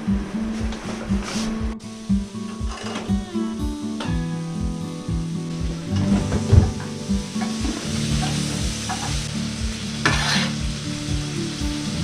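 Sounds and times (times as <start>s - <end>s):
background music: 0.0s - 12.0s
meat sizzling in a pan: 4.2s - 12.0s.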